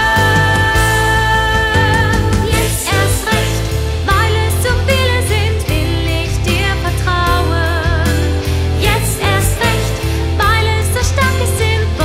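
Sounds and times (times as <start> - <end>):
instrumental backing with bass: 0.0 - 12.0
woman singing with vibrato: 0.0 - 12.0.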